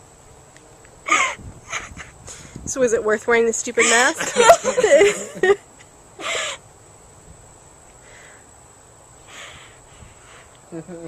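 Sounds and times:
short breathy laugh: 0:01.1 - 0:02.2.

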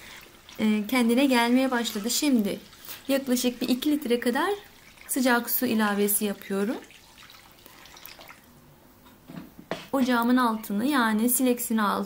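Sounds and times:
water trickling into tray: 0:00.0 - 0:08.5.

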